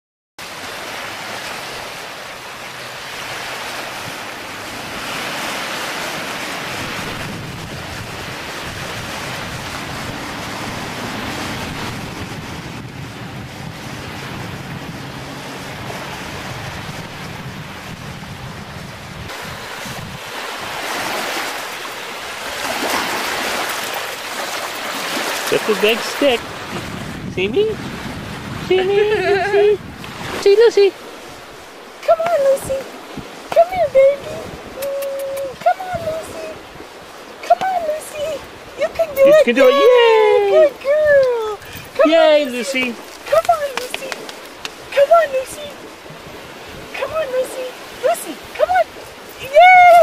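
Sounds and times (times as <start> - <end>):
small waves washing on shore: 0.4 - 50.0
wind on microphone: 3.8 - 50.0.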